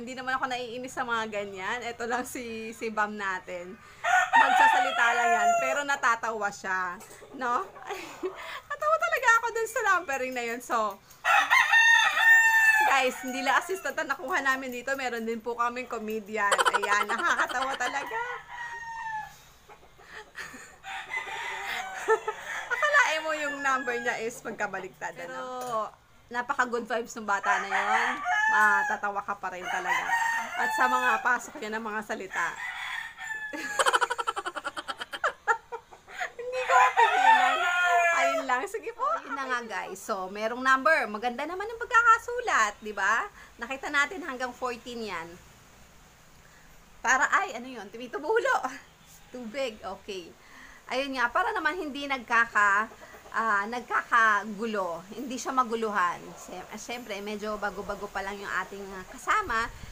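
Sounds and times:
rooster crowing: 3.9 - 6.1, 11.2 - 14.0, 16.6 - 19.5, 20.4 - 24.4, 27.4 - 31.4, 32.3 - 34.9, 36.1 - 38.8.

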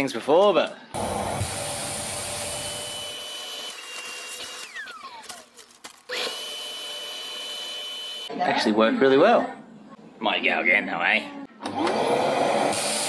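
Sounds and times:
vacuum cleaner running: 1.0 - 5.0, 11.7 - 13.0.

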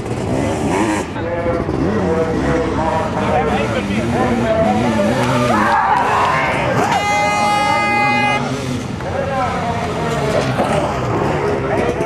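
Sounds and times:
motorcycle engines revving: 0.0 - 12.0
steady horn blast: 6.7 - 8.6.

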